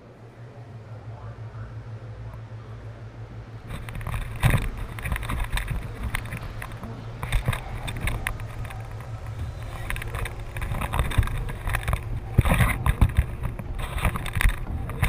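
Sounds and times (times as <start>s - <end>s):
wind buffeting microphone: 0.0s - 15.0s
harness knocks and rustles: 3.6s - 15.0s.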